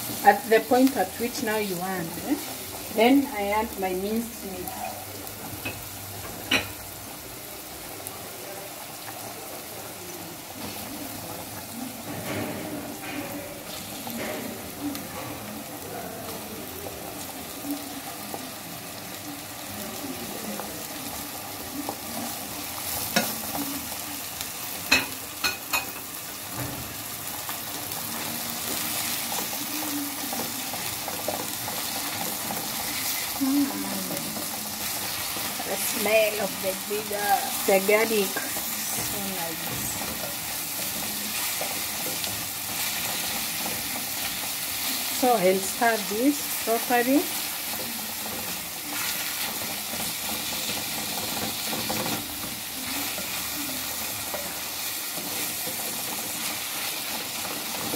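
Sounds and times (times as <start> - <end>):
vegetables sizzling in oil: 0.0 - 57.9.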